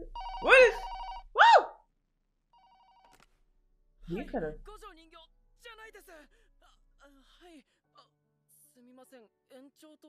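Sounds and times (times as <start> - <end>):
telephone ringing: 0.0 - 1.3, 2.5 - 3.3.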